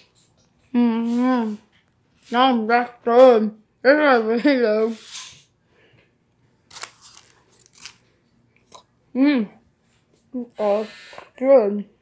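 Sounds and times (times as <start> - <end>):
person chewing: 6.7 - 8.9.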